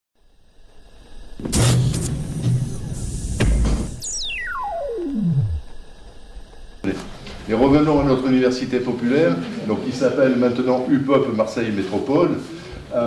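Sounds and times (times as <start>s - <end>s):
low hum: 0.2s - 8.6s
sharp synthesizer hits: 1.4s - 5.7s
long falling sweep: 4.0s - 5.9s.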